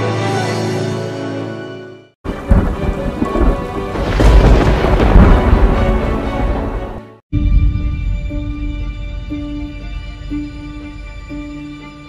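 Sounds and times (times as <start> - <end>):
music: 0.0 - 12.0
rain: 2.3 - 7.2
thunder rumbling: 2.3 - 11.2.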